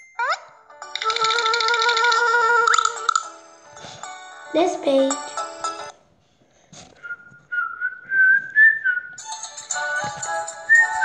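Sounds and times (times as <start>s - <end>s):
cartoon buzzing tone with rattle: 0.9s - 3.3s.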